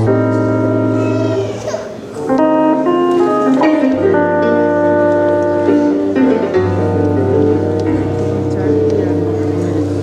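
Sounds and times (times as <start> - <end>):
electric guitar: 0.0 - 10.0
organ keyboard chords: 0.0 - 10.0.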